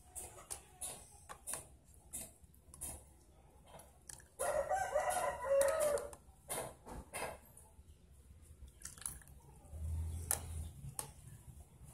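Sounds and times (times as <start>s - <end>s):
rooster crowing: 4.4s - 6.1s.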